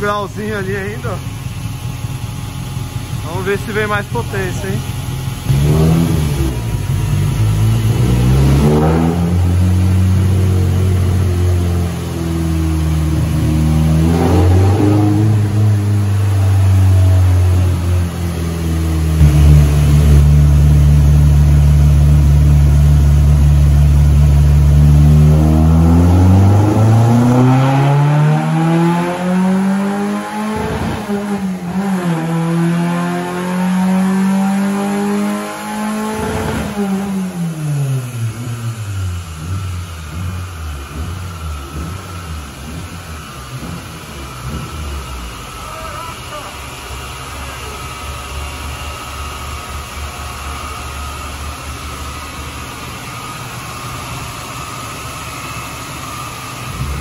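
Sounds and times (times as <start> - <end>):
car engine revving under load: 0.0 - 57.0.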